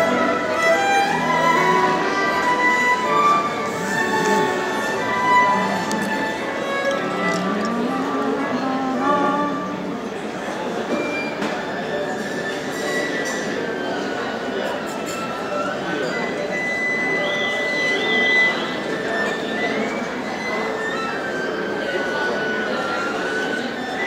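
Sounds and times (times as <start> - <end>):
violins playing: 0.0 - 10.0.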